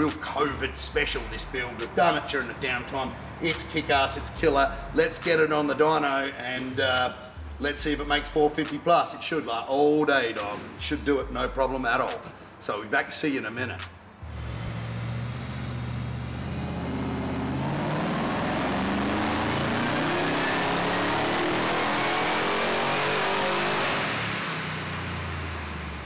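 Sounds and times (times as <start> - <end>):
car engine revving on dyno: 14.2 - 26.0
supercharger whine: 14.2 - 26.0.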